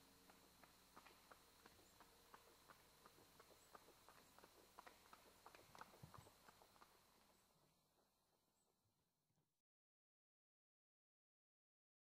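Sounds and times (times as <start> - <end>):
horse hooves trotting on asphalt: 0.0 - 7.5.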